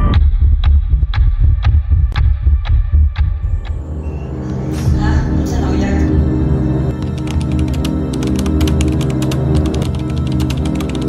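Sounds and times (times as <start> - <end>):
deep bass pulse: 0.0 - 8.6.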